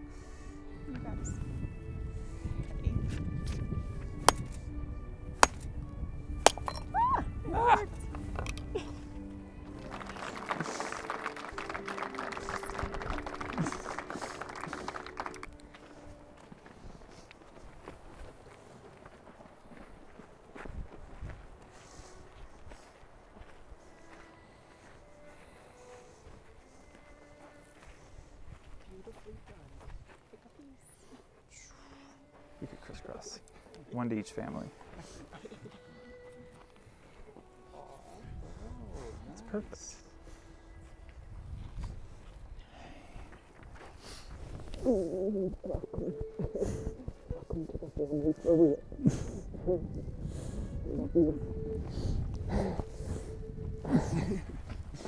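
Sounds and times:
soft background music: 0:00.0 - 0:55.0
hammer striking steel chisel: 0:05.4 - 0:05.7, 0:06.4 - 0:06.9
voices murmuring: 0:44.8 - 0:49.9.

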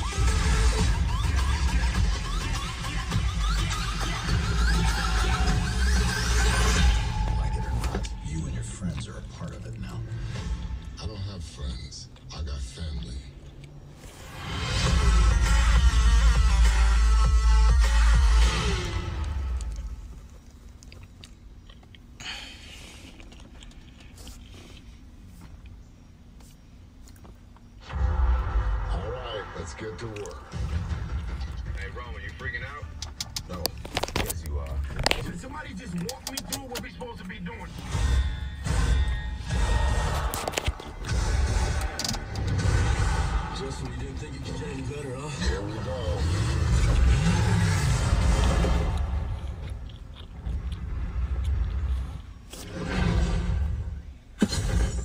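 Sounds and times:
car engine revving: 0:00.0 - 0:11.6, 0:12.2 - 0:20.3, 0:34.5 - 0:55.0
film trailer music with heavy bass: 0:00.0 - 0:13.4, 0:14.0 - 0:20.2, 0:27.8 - 0:55.0
deep rumble: 0:00.0 - 0:21.6, 0:27.8 - 0:55.0.

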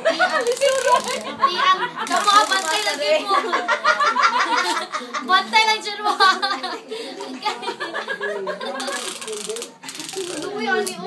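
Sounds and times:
people talking: 0:00.1 - 0:11.0.

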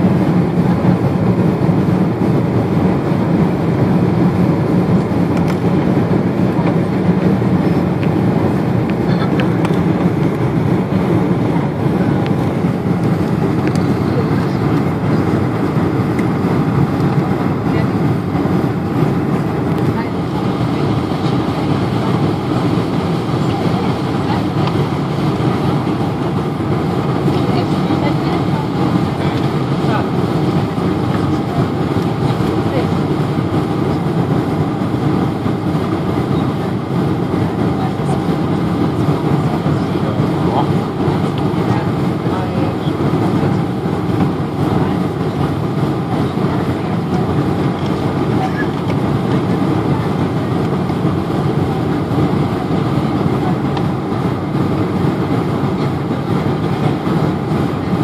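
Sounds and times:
airplane cabin engine rumble: 0:00.0 - 0:58.0.

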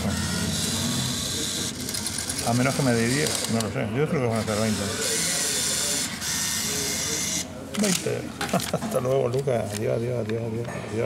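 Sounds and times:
banknote dispenser whirring: 0:00.0 - 0:08.2.

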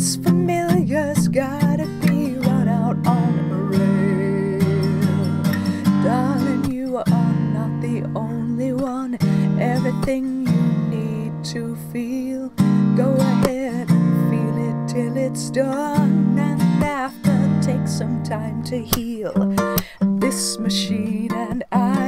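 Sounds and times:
acoustic guitar strumming chords: 0:00.0 - 0:22.0
woman singing: 0:00.0 - 0:22.0.

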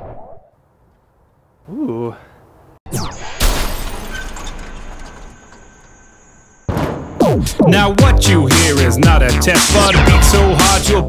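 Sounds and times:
crashed car rumbling and clattering: 0:03.9 - 0:08.0.

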